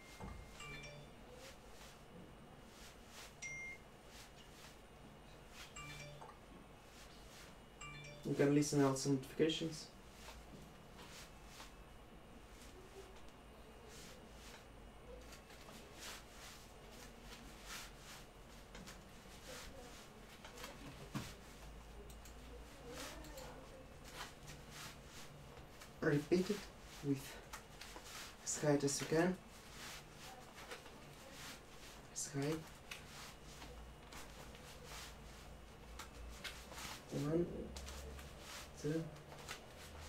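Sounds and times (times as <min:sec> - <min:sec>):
electronic notification beep: 0:00.0 - 0:01.1, 0:03.4 - 0:03.8, 0:05.8 - 0:06.3, 0:07.8 - 0:08.4
rustling on exercise mat: 0:01.3 - 0:04.9, 0:06.8 - 0:07.6, 0:10.0 - 0:11.8, 0:13.8 - 0:21.8, 0:22.5 - 0:40.0.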